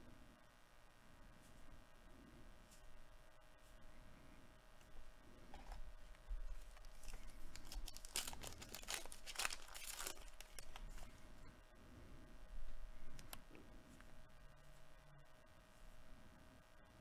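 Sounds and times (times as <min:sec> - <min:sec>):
trading cards rustling: 0:05.4 - 0:11.5.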